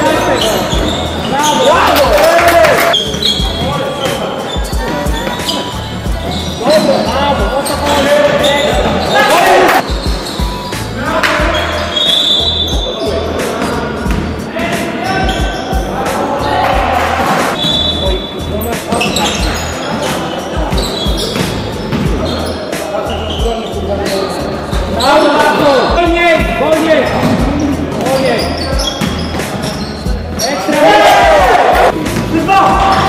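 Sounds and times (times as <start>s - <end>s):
players calling out: 0.0s - 33.0s.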